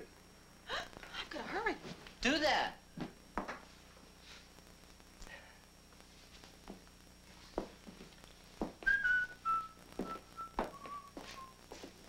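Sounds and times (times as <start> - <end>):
man whistling: 8.8 - 11.6.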